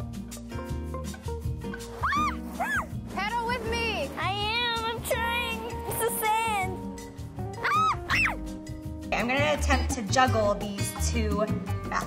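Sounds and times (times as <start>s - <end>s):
music playing: 0.0s - 12.0s.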